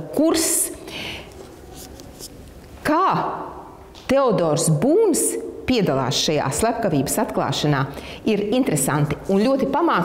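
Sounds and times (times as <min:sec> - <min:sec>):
woman speaking: 0:00.0 - 0:00.9, 0:02.8 - 0:10.0
book being handled: 0:01.3 - 0:02.8.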